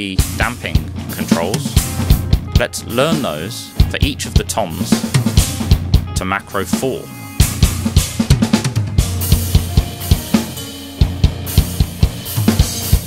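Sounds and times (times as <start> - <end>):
hi-hat and cymbal wash: 9.2 - 13.0.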